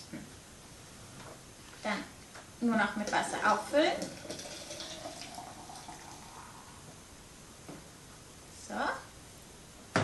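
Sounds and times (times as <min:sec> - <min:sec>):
water pouring into jug: 0:03.4 - 0:06.8.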